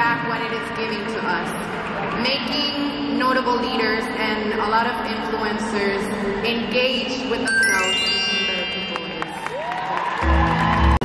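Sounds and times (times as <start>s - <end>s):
bell-like musical chime: 7.5s - 9.5s.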